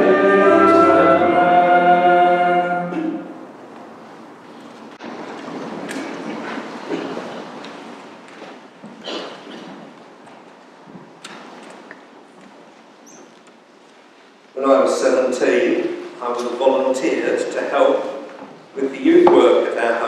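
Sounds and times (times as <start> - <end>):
people shuffling about: 2.8 - 17.4, 18.0 - 19.8
footsteps: 3.0 - 14.5.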